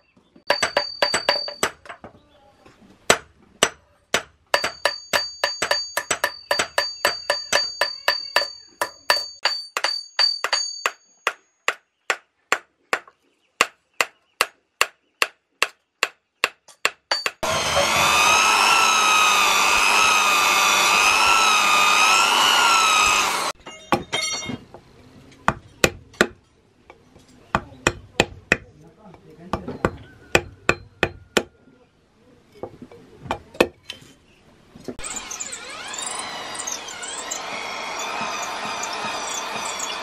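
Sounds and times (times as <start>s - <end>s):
hammers striking on anvil: 0.5s - 2.0s, 3.1s - 13.1s, 14.0s - 17.5s, 23.6s - 24.6s, 29.5s - 31.5s
loud wavering whine: 17.4s - 23.6s, 35.0s - 40.0s.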